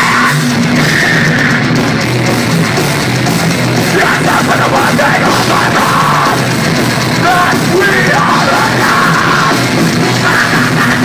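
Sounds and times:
metal band playing live: 0.0 - 11.0
person yelling: 3.9 - 6.4, 7.2 - 9.6.

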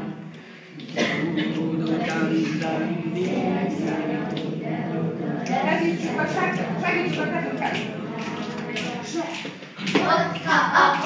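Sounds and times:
children singing: 0.0 - 11.0
murmuring voices: 0.0 - 11.0.

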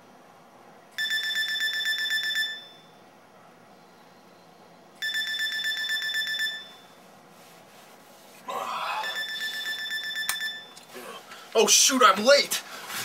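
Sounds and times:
alarm clock beeping: 1.0 - 2.9, 5.0 - 7.0, 9.0 - 10.8
rustle: 6.8 - 8.5.

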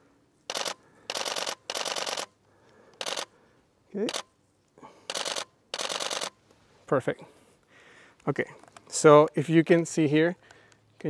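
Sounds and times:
camera shutter burst clicks: 0.5 - 3.3, 4.0 - 4.3, 5.0 - 6.4.

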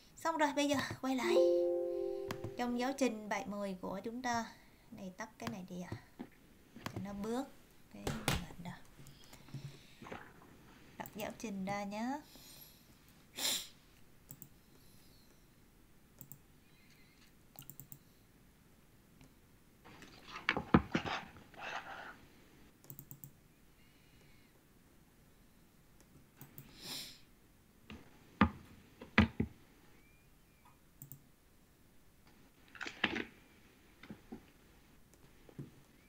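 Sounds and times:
computer mouse double-clicks: 14.3 - 14.5, 16.2 - 16.4, 17.6 - 18.0, 22.8 - 23.4, 31.0 - 31.2
computer mouse clicks: 14.3 - 14.6, 16.2 - 18.1, 22.8 - 23.4, 26.0 - 26.7, 31.0 - 31.2.

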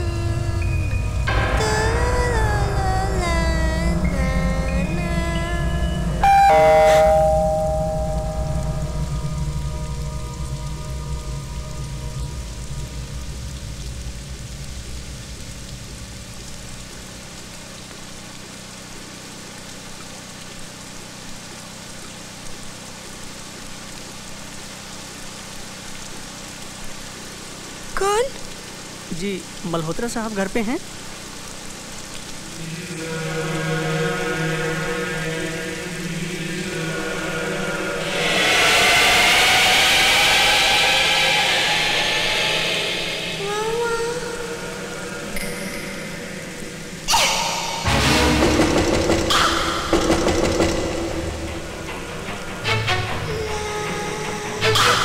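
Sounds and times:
steady rain: 0.0 - 55.0
melodic line: 4.8 - 9.0
two-note doorbell chime: 6.2 - 8.9.

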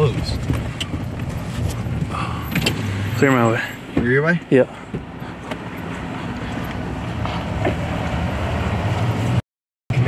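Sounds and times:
truck engine humming: 0.0 - 9.4.

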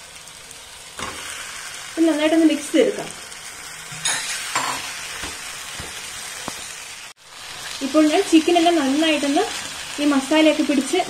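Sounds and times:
chicken sizzling in a frying pan: 0.0 - 11.0
spatula scraping a pan: 3.9 - 6.6.

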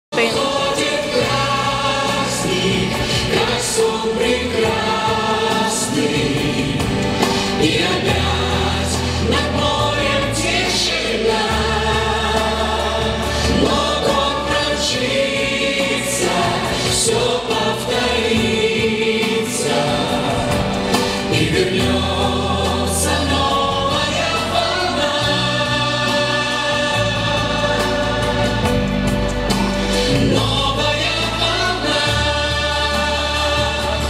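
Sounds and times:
group singing: 0.1 - 34.0
held bass notes: 0.1 - 34.0
pop backing track: 0.1 - 34.0.

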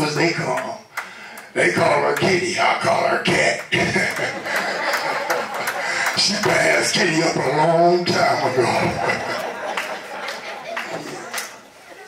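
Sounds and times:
man laughing into a microphone: 3.7 - 6.7, 8.1 - 12.0.

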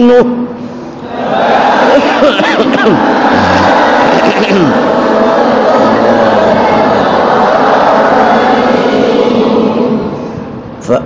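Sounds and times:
group chanting together: 1.0 - 2.2, 2.9 - 10.4.

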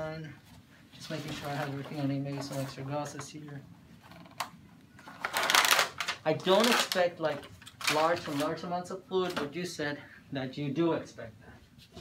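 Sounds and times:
paper wrapper tearing open: 5.2 - 7.1, 7.7 - 8.6.

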